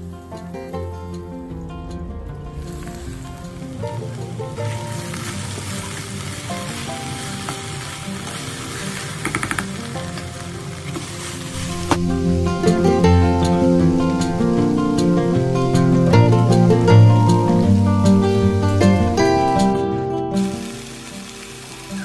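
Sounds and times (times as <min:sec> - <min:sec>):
okra sizzling in hot oil: 0:00.0 - 0:19.8, 0:20.4 - 0:22.0.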